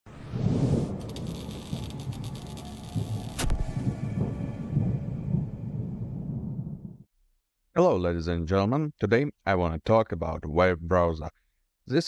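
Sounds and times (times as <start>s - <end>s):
low rumble: 0.1s - 7.1s
flickering crackles: 1.0s - 3.5s.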